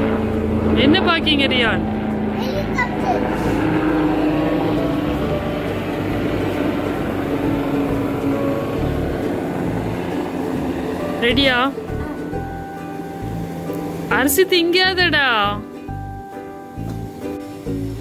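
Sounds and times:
helicopter flying overhead: 0:00.0 - 0:16.8.

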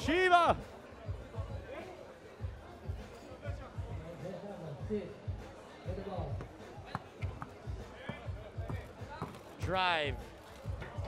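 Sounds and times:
background music: 0:00.0 - 0:11.0
basketball dribbling: 0:06.4 - 0:09.5.

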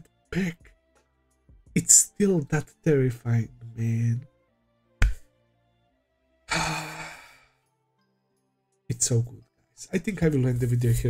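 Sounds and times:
faint background music: 0:00.0 - 0:11.0
man sighing: 0:06.5 - 0:07.5.

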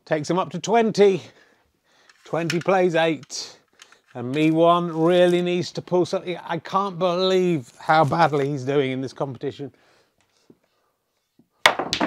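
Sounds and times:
snooker balls knocking: 0:11.7 - 0:12.0.

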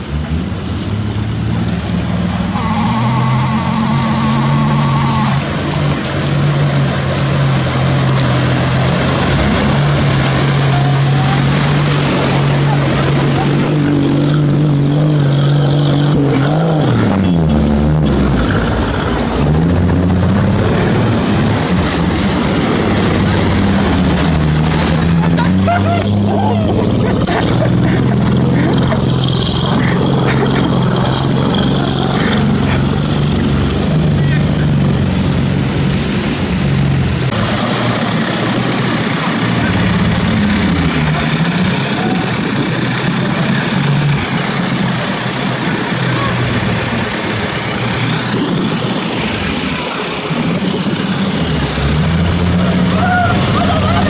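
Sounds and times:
off-road vehicle engine under load: 0:00.0 - 0:54.0
water splashing: 0:00.0 - 0:54.0.

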